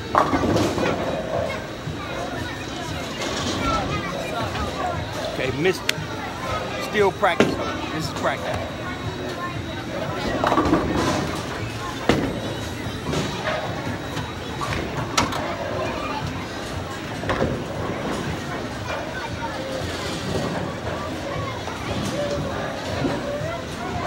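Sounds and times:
bowlers' voices: 0.0s - 24.0s.

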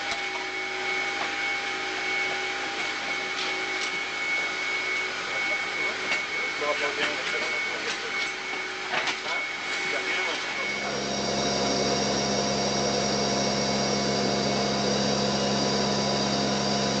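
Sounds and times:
turboprop engines droning: 0.0s - 17.0s.

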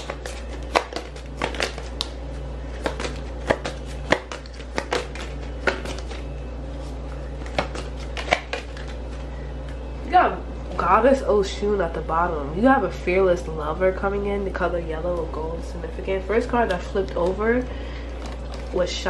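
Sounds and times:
cards being shuffled: 0.0s - 9.8s
low steady hum: 0.0s - 19.0s.

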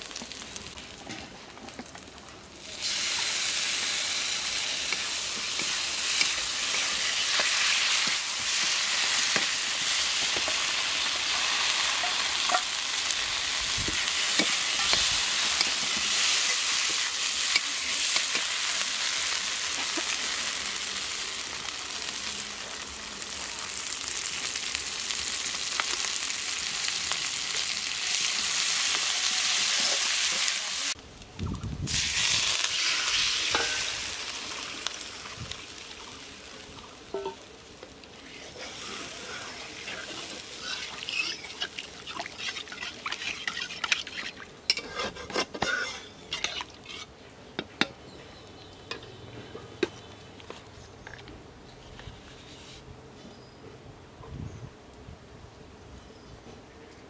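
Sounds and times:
food sizzling in a wok: 0.0s - 31.0s, 31.8s - 47.1s
metal spatula scraping pan: 38.4s - 47.1s.

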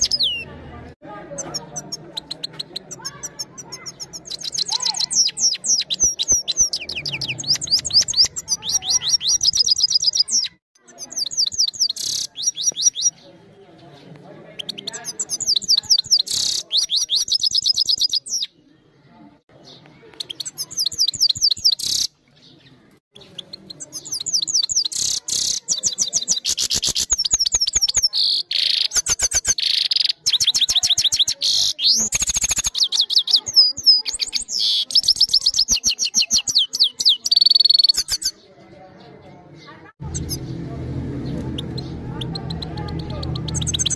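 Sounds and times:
goldfinch singing: 1.3s - 13.2s, 14.6s - 18.5s, 23.2s - 38.4s, 41.2s - 43.9s.

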